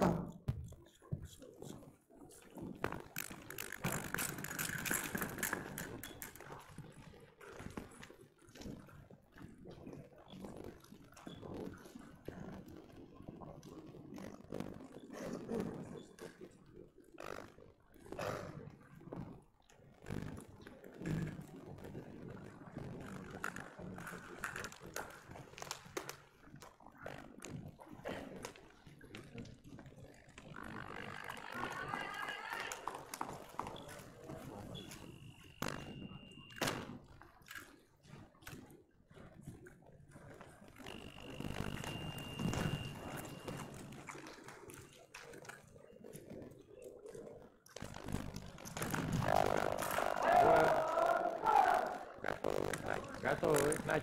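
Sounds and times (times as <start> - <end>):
voices in a sports hall: 28.0 - 36.9, 48.8 - 54.0
high beeps: 40.9 - 43.6.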